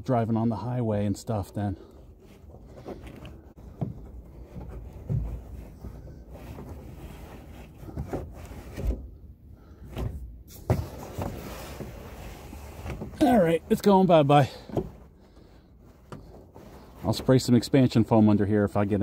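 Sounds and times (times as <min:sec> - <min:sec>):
hands rustling and scraping padding: 0:01.3 - 0:19.0.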